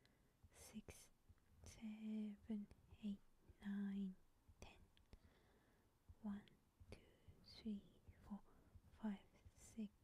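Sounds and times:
woman's soft voice: 0.4 - 5.1, 6.1 - 10.0.

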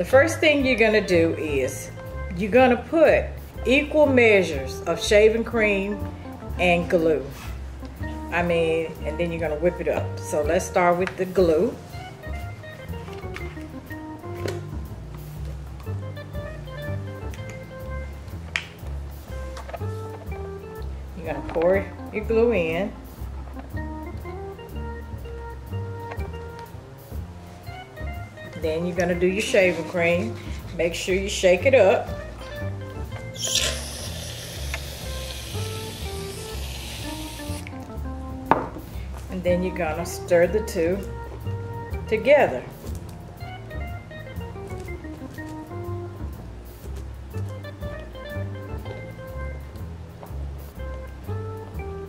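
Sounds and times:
instrumental background music: 0.0 - 52.0
aerosol can spraying hiss: 33.4 - 37.7.

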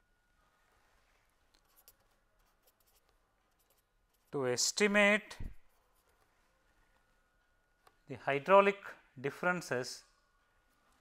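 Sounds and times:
pen scratching on paper: 1.6 - 4.3.

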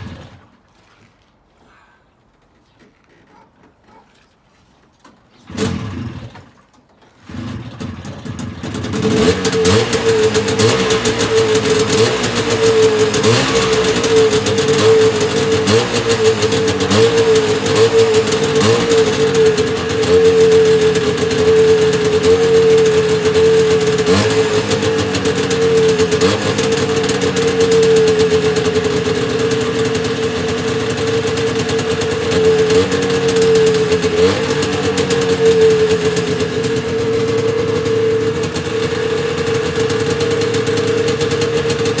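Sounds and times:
snowmobile engine idling: 7.2 - 42.0.

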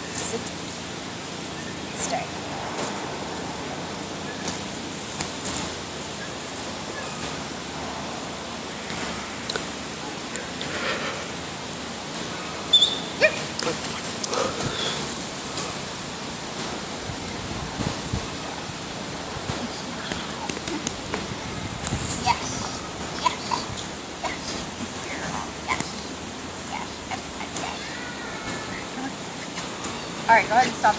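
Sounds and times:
outdoor background hiss: 0.0 - 30.9.

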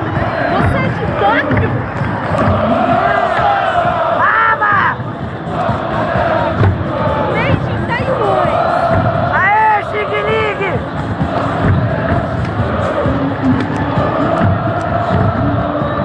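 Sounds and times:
crowd shouting and chanting: 0.0 - 16.0
low drum beats: 0.0 - 16.0.

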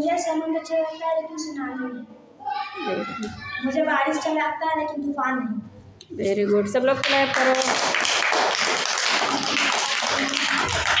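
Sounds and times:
children clapping: 7.0 - 11.0.

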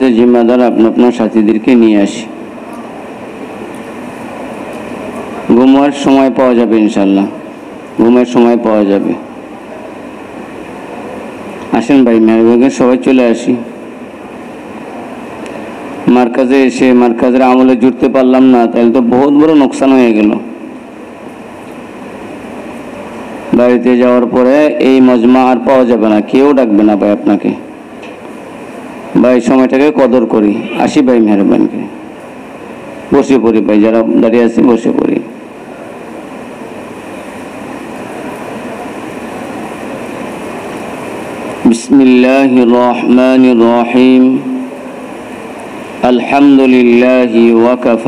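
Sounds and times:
man speaking: 0.0 - 2.4, 5.5 - 9.3, 11.7 - 13.8, 16.0 - 20.6, 23.5 - 27.7, 29.1 - 32.0, 33.1 - 35.4, 41.6 - 44.8, 46.0 - 48.0
man's amplified speech: 0.0 - 2.4, 5.4 - 9.3, 11.7 - 13.8, 16.0 - 20.7, 23.5 - 27.7, 29.1 - 32.1, 33.1 - 35.4, 41.6 - 44.9, 46.0 - 48.0
room noise: 0.0 - 48.0.

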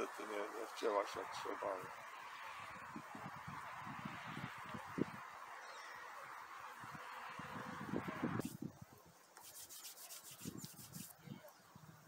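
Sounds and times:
hands rubbing together: 8.4 - 8.6, 9.4 - 11.2.

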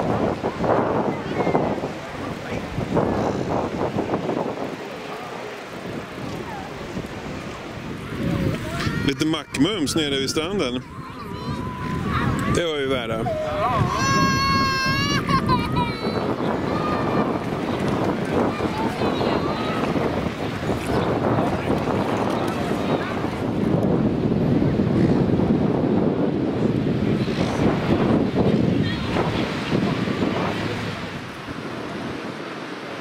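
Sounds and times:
crowd chatter: 0.0 - 33.0
wind gusting on microphone: 0.0 - 33.0.

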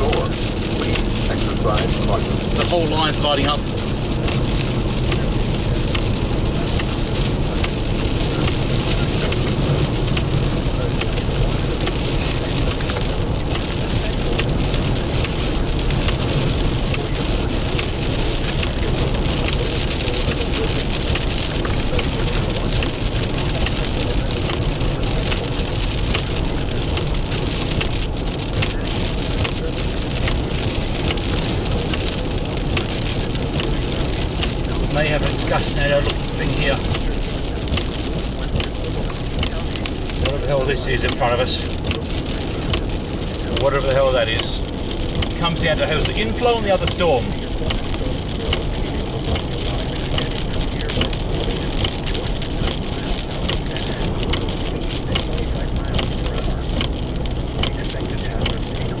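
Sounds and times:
rain pattering on car roof: 0.0 - 59.0
road and engine noise: 0.0 - 59.0.

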